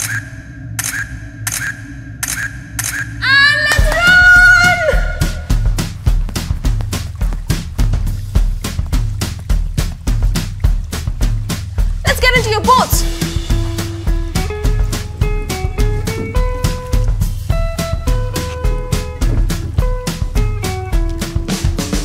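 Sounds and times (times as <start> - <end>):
low music drone: 0.0 - 4.0
loud held cry: 3.2 - 5.5
fast music with drum beat: 3.8 - 22.0.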